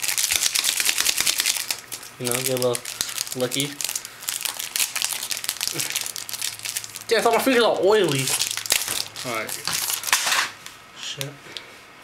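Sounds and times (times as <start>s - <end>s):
foil wrapper crinkling: 0.0s - 10.6s.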